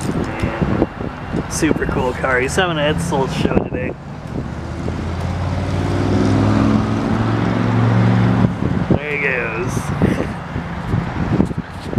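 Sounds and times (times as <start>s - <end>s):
car engine driving away: 2.1s - 8.9s.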